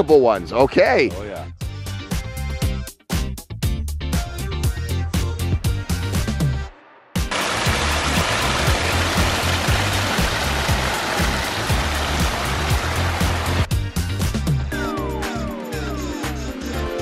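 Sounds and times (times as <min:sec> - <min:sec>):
water rushing over rocks: 0:07.3 - 0:13.7.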